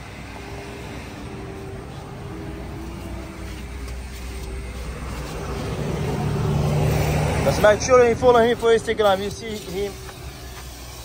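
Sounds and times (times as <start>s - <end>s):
motor drone: 0.0s - 11.0s.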